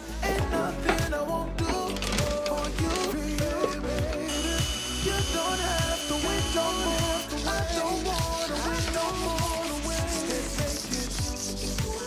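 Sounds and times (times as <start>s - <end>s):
background music with beat: 0.0s - 12.0s
cordless drill whining: 4.3s - 7.3s.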